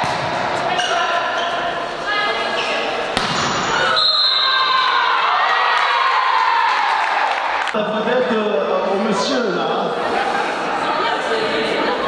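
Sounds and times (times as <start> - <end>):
volleyball smack: 3.2 - 3.7
long held shouts and cheers: 3.8 - 7.7.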